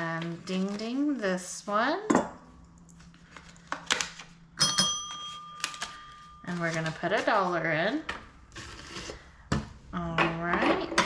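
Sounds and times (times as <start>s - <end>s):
desk bell ringing: 4.6s - 6.6s.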